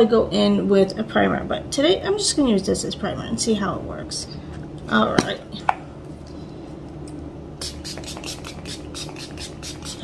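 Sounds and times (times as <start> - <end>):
spray bottle spritzing: 7.6 - 10.0.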